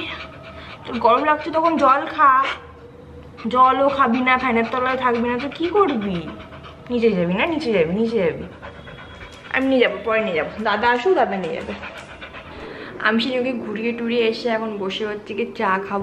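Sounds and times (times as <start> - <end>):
dog panting: 0.0 - 13.9.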